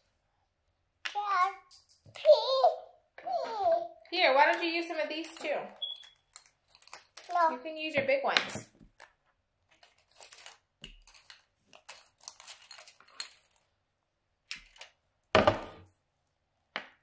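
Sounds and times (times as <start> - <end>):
craft materials rustling: 4.8 - 7.6, 8.8 - 13.9.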